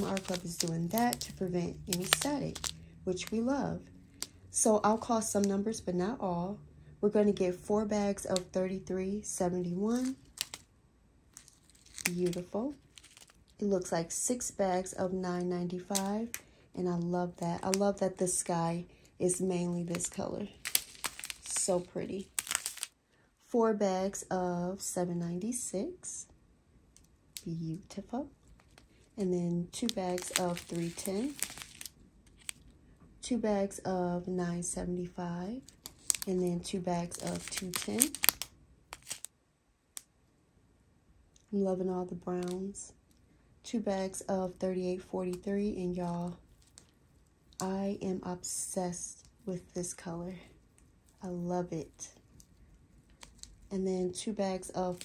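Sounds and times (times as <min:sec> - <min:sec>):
plastic bag crinkling: 0:00.0 - 0:03.4, 0:09.9 - 0:10.7, 0:11.3 - 0:13.6, 0:19.7 - 0:23.0, 0:29.7 - 0:32.7, 0:35.6 - 0:39.3, 0:46.1 - 0:47.0, 0:52.2 - 0:53.7, 0:54.6 - 0:55.0.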